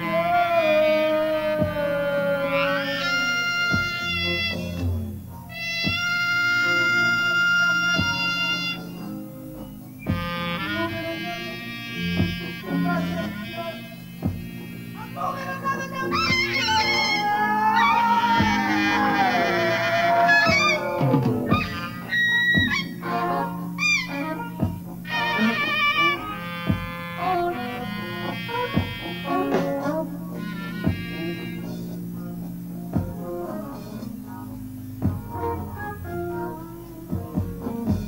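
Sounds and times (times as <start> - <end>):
clarinet wailing phrases: 0.0 - 32.4
live rock band music: 0.0 - 38.0
steady low tone: 0.0 - 38.0
high held voice-like note: 2.2 - 9.2, 10.0 - 32.4.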